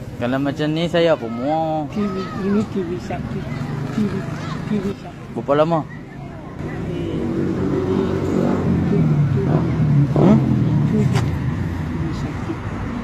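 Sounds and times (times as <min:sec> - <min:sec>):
vehicle engine passing by: 0:02.0 - 0:13.0.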